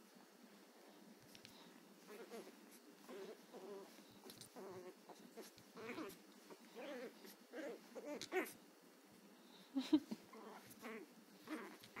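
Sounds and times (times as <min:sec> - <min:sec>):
puppy yapping and growling: 0:02.0 - 0:08.6, 0:10.3 - 0:12.0.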